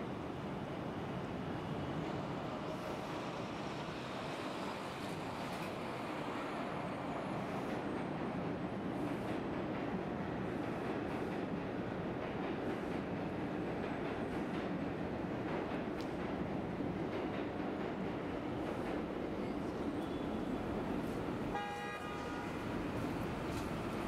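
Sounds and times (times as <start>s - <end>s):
city traffic rumble: 0.0s - 24.0s.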